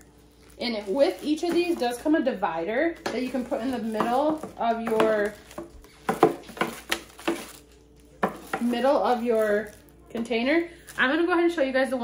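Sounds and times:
plastic bag crinkling: 0.0 - 2.1, 3.0 - 10.1.

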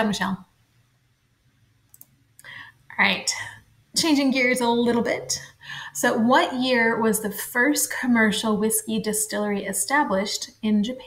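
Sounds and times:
faint sharp clicks: 1.9 - 2.5
soft breath: 2.4 - 3.7
person speaking: 2.4 - 11.0.

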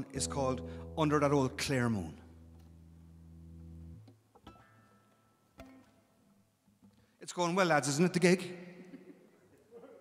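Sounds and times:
faint acoustic guitar plucking: 0.0 - 6.4.

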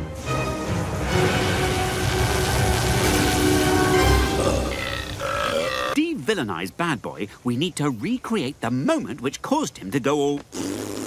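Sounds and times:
music: 0.0 - 5.1.

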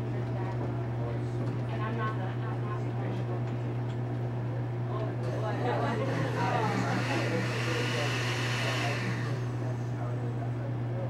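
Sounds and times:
steady low hum: 0.0 - 11.0
whirring machine: 5.2 - 10.6.

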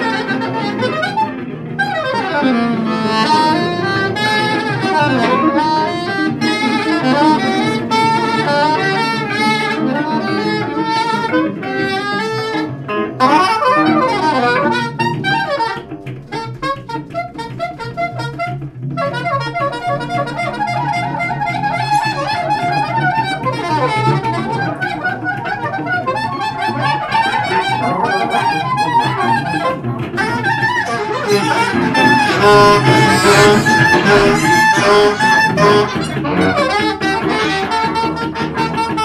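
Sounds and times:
guitar: 0.0 - 39.0
soprano saxophone runs: 0.0 - 39.0.

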